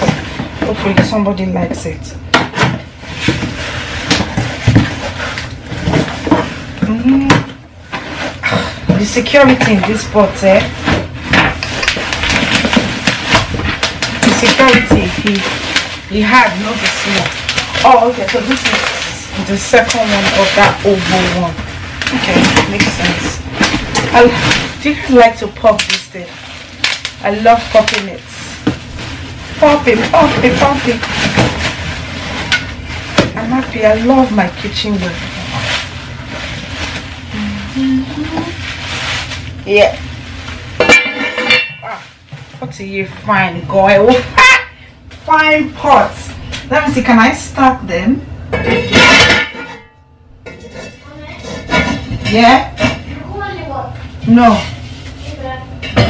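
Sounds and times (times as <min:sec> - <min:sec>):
bubble wrap crinkling: 0:02.7 - 0:41.0, 0:41.7 - 0:46.6
person saying ah: 0:37.4 - 0:38.6.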